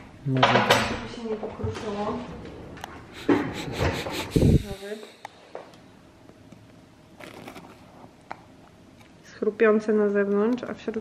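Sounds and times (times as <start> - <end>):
short vocal sound: 3.2 - 5.0.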